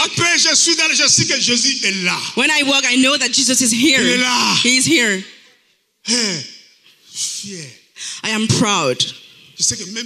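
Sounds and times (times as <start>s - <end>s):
preacher exclaiming: 3.8s - 5.1s.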